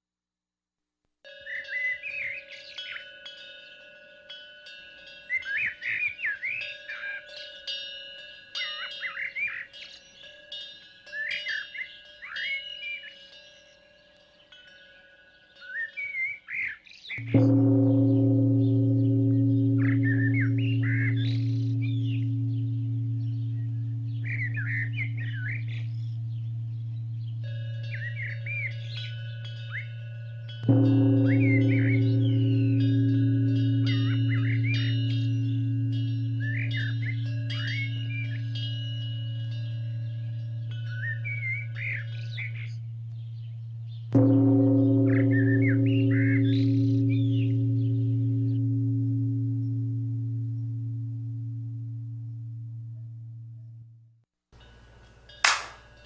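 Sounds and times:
birds chirping: 8.5 - 53.8
deep-toned bell ringing: 17.2 - 56.0.

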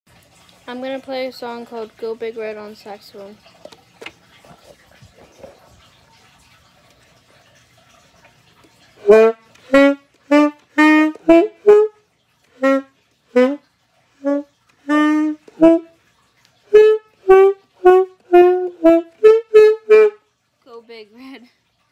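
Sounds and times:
faint handling noise: 3.5 - 7.1
alto saxophone playing: 9.0 - 16.0, 16.6 - 20.3.

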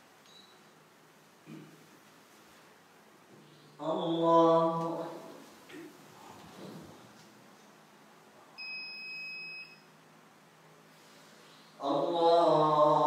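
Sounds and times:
man chanting prayer: 3.8 - 5.5, 11.8 - 13.0.

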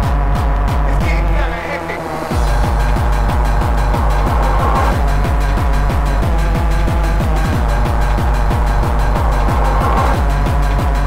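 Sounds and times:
rave dance music: 0.0 - 11.0.

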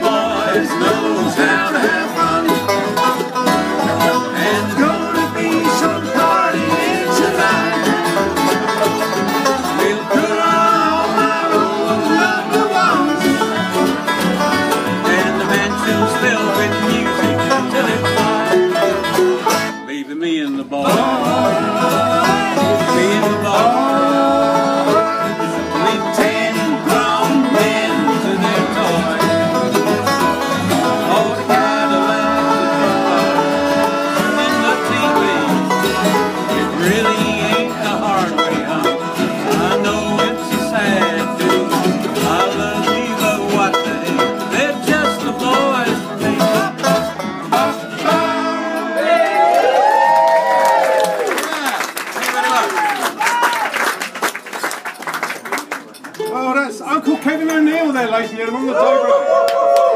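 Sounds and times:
banjo rolling: 0.0 - 49.9
bluegrass band playing: 0.0 - 59.2.

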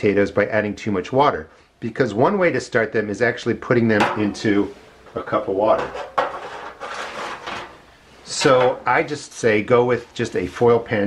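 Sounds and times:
rustling handling noise: 4.1 - 11.0.

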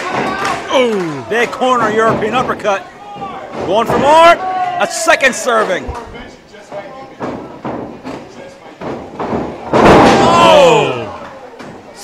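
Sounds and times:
body slamming on ring canvas: 8.9 - 10.6.

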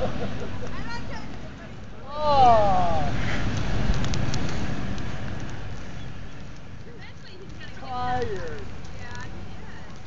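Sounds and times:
truck engine and tyres on gravel: 0.0 - 10.0.

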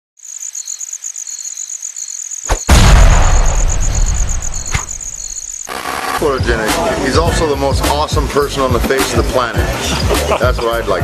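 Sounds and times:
high cricket-like chirping: 0.2 - 6.4.

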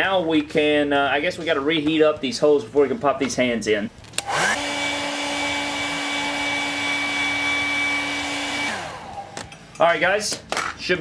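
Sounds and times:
hair dryer running: 4.2 - 9.6.

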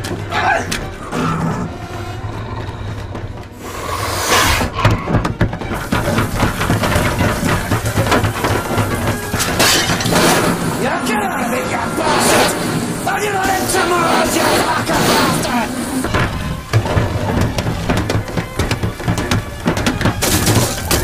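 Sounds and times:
music with low drone: 0.0 - 13.2, 15.8 - 21.0
wordless cries: 0.2 - 2.1, 10.8 - 16.1
crashes and smashing: 4.7 - 21.0.

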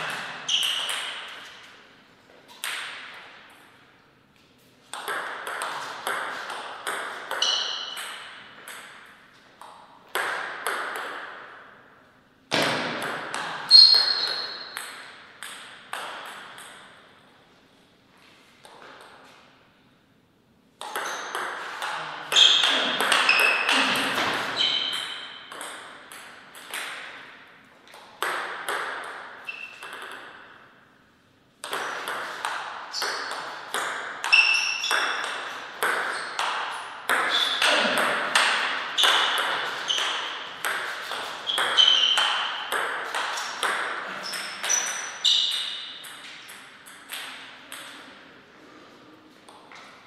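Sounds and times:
shoe squeaks: 0.0 - 1.0, 7.4 - 8.0, 13.7 - 14.8, 21.0 - 21.3, 22.3 - 25.5, 29.4 - 29.9, 34.3 - 35.2, 36.1 - 36.4, 37.3 - 37.7, 38.9 - 42.6, 44.1 - 46.0.

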